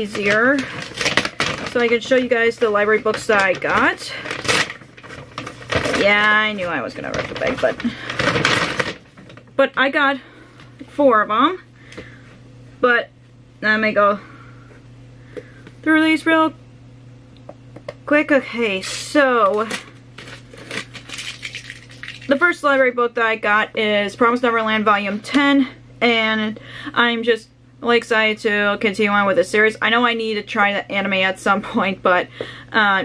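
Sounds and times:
bag rustling and tearing: 0.0s - 2.2s, 3.0s - 9.5s, 19.7s - 22.3s.

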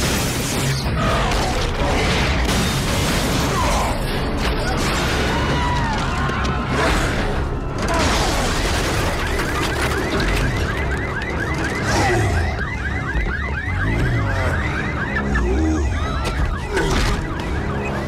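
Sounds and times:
crashing debris: 0.0s - 12.0s
electronic siren alarm wailing: 7.1s - 18.0s.

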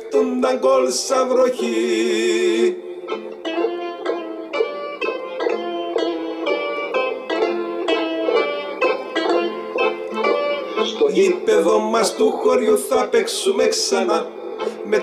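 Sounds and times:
bouzouki plucking melody: 1.6s - 15.0s.

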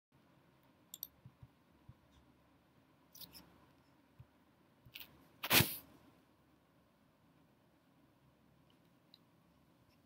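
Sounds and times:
computer mouse clicks: 0.9s - 2.2s.

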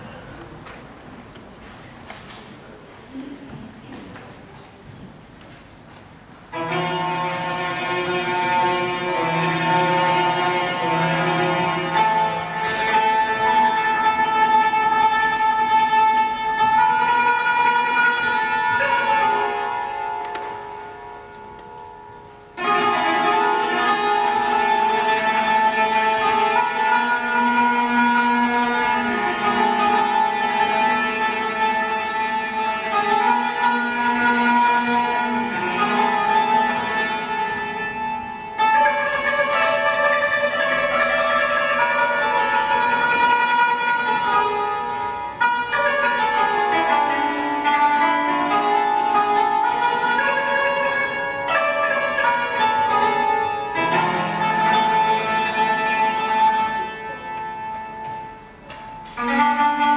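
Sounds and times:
hammered dulcimer playing: 6.5s - 59.9s.

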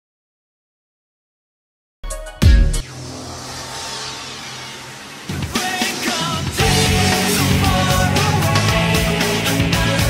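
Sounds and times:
sharp hit: 2.3s - 7.6s
noisy whoosh: 2.6s - 7.7s
low hum: 2.7s - 7.6s.

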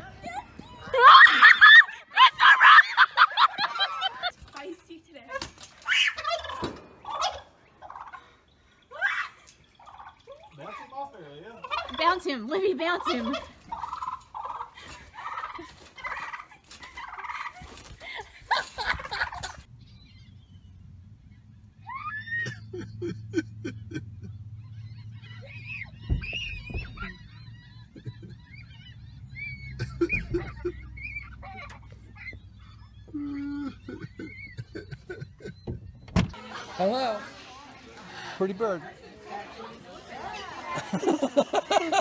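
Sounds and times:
gulls calling: 0.0s - 42.0s
turkey gobbling: 5.9s - 8.4s, 9.1s - 10.9s, 11.5s - 17.9s, 18.5s - 19.7s, 24.1s - 33.2s, 33.8s - 35.6s
car low rumble: 19.1s - 36.5s
thump: 26.1s - 27.1s.

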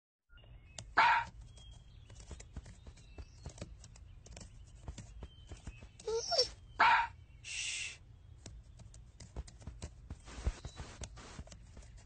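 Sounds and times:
dog barking: 1.0s - 1.3s, 6.1s - 7.2s.

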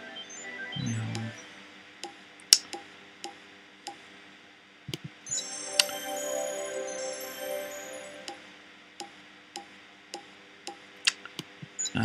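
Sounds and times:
shimmering chime jingle: 5.2s - 8.6s.

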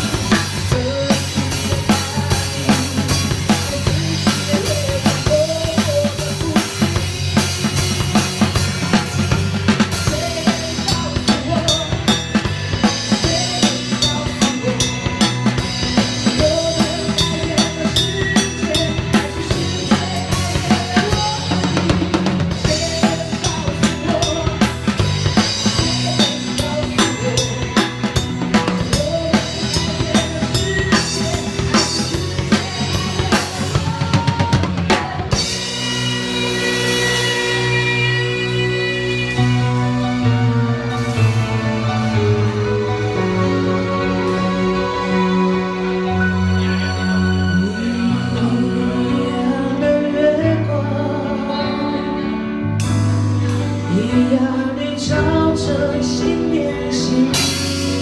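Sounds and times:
drum kit groove: 0.0s - 46.4s, 52.8s - 58.0s
band holding chords: 0.0s - 58.0s.

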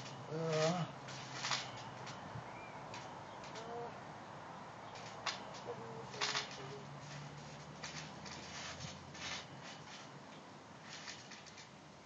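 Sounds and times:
scuffs and rustles on trampoline: 0.0s - 3.9s, 4.9s - 11.8s
bird cooing: 0.3s - 0.9s, 3.5s - 4.0s, 5.6s - 6.9s.

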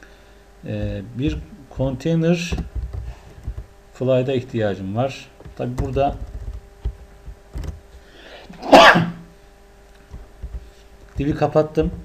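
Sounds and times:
person sneezing: 8.4s - 9.3s.

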